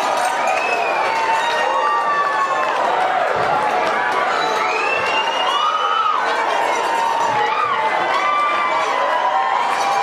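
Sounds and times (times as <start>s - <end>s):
crowd cheering and screaming: 0.0s - 10.0s.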